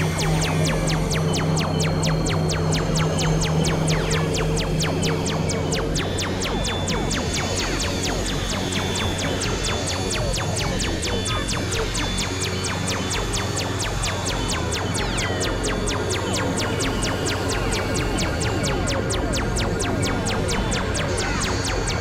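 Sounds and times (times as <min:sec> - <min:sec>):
experimental electronic music: 0:00.0 - 0:22.0.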